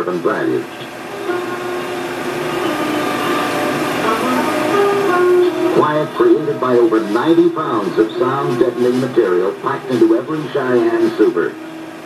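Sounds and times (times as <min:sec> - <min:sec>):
film hiss: 0:00.0 - 0:12.0
sustained soundtrack chords: 0:00.9 - 0:12.0.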